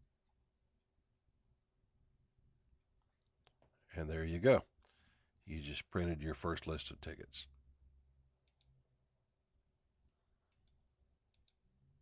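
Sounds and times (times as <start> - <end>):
computer mouse clicks: 8.4 - 8.8, 10.0 - 11.7.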